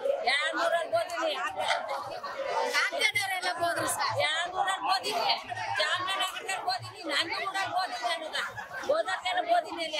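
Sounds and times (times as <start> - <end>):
chattering voices: 0.0 - 9.9
woman speaking into a microphone: 0.1 - 9.9.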